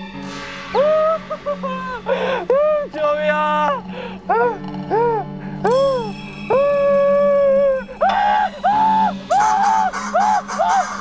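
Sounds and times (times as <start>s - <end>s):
low music drone: 0.0s - 11.0s
man screaming and wailing: 0.8s - 11.0s.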